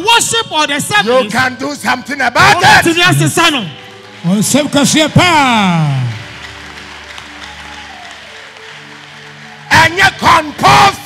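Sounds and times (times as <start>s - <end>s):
light clapping: 6.0s - 10.6s.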